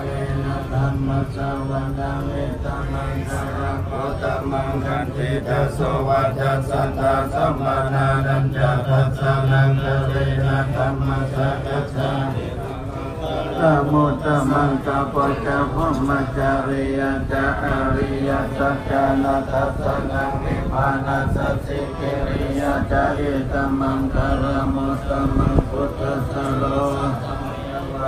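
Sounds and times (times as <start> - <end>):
monks chanting in unison: 0.0 - 28.0.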